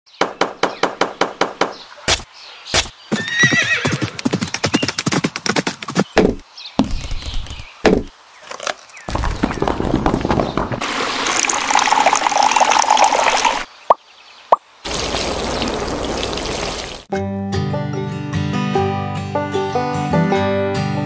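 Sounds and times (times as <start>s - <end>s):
short thumps: 5.7s - 8.1s
water pouring into a pond: 10.8s - 13.7s, 14.8s - 17.1s.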